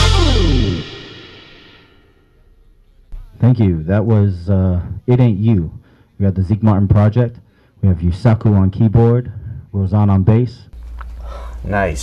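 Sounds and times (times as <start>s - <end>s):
jazz trio chord ringing out: 0.0s - 1.8s
cymbal crash: 0.0s - 2.5s.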